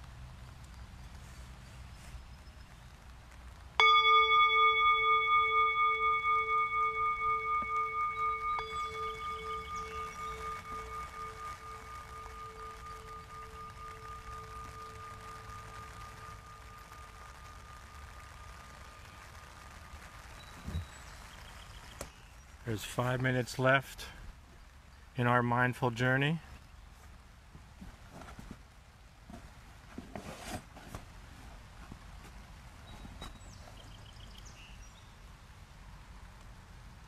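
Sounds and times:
singing bowl ringing: 3.8 - 21.0.

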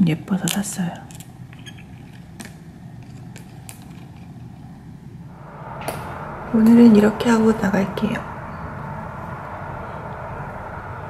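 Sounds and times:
low background rumble: 4.4 - 11.0.

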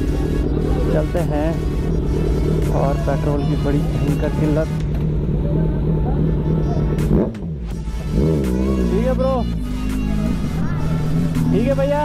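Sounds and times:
background music: 0.0 - 12.0
motorcycle engine moving off: 0.0 - 12.0.

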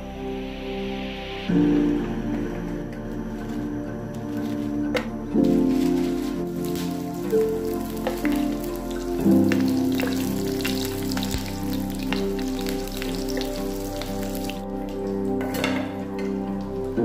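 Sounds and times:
background music: 0.0 - 17.0
fish frying in oil: 5.8 - 15.2.

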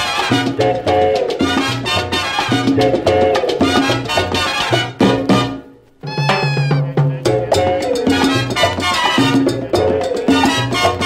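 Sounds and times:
mambo band music: 0.0 - 11.0.

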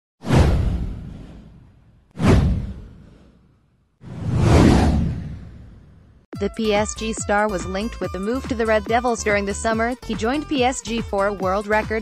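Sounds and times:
whoosh with deep rumble: 0.2 - 6.3.

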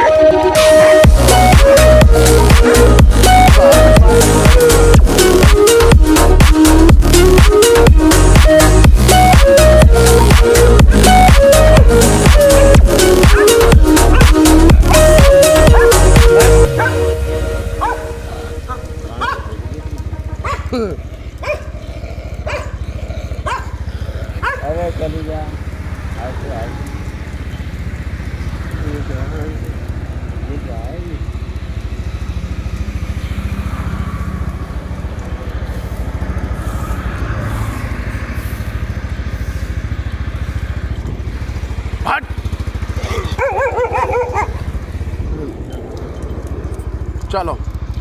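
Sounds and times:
motorbike engine rumble: 0.0 - 48.0
dog crying: 13.1 - 17.1, 17.8 - 19.6, 20.3 - 24.6, 42.9 - 44.8
person laughing: 14.5 - 15.2, 20.6 - 21.1, 43.0 - 43.4.

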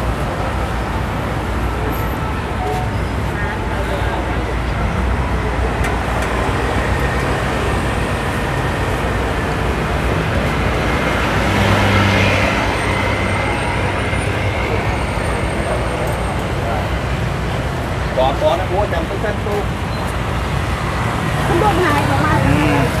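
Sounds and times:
street traffic noise: 0.0 - 23.0.

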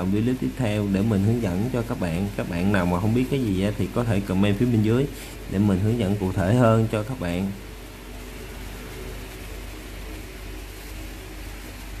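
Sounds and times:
low machine hum with hiss: 0.0 - 12.0.

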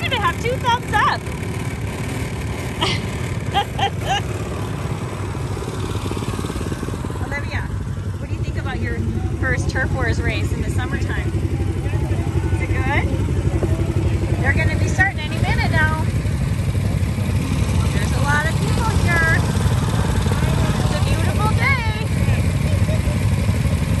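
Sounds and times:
people's voices: 0.0 - 1.3, 2.8 - 5.0, 7.0 - 24.0
small atv engines idling: 0.0 - 24.0.

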